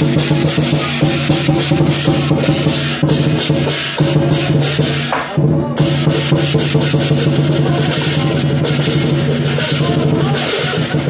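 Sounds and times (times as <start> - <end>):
big drum beating: 0.0 - 11.0
crashing cymbals: 0.0 - 11.0.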